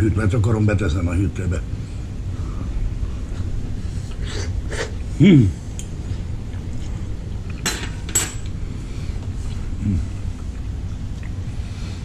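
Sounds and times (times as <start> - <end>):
person humming appreciatively: 9.8 - 10.1.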